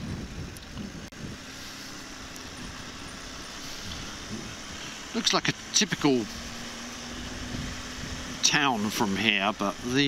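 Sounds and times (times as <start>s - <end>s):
motorcycle engine running: 0.0s - 10.0s
wind and road noise hiss: 0.0s - 10.0s.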